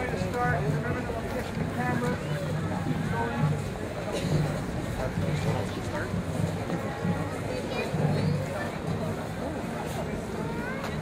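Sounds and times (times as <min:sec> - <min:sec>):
indistinct talking: 0:00.0 - 0:11.0.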